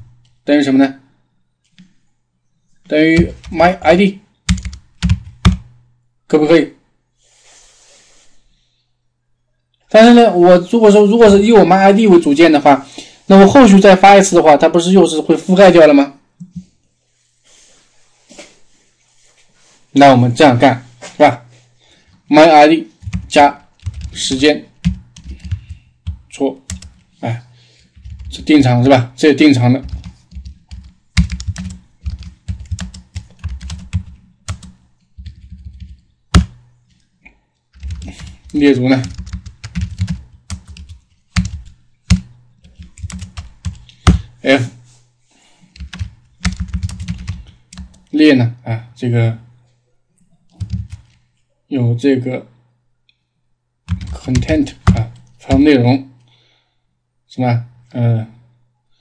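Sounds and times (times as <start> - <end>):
computer keyboard typing: 3.2 - 3.8, 4.5 - 5.8, 23.0 - 27.2, 27.8 - 28.6, 29.7 - 37.0, 37.8 - 44.4, 45.7 - 48.1, 50.5 - 51.2, 53.9 - 55.7.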